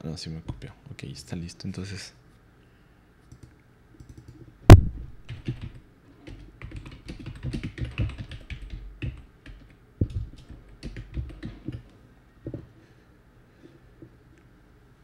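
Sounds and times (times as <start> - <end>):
typing on computer keyboard: 3.3 - 4.4, 5.2 - 11.8.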